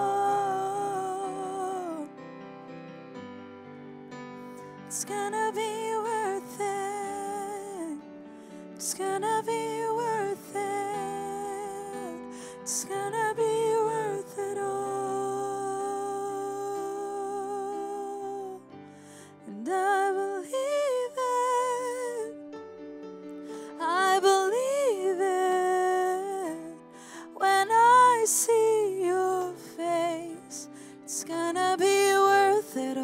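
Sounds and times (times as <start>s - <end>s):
woman singing a long note: 0.0s - 2.2s, 8.9s - 18.7s.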